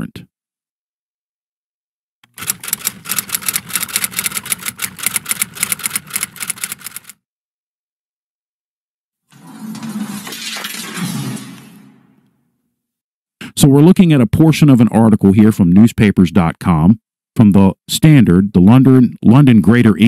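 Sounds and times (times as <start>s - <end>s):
typewriter keystroke clicks: 2.2s - 7.2s.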